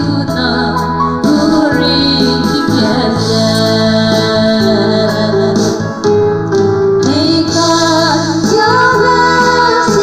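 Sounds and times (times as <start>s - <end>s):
instrumental backing: 0.0s - 10.0s
women singing gospel song: 7.1s - 10.0s.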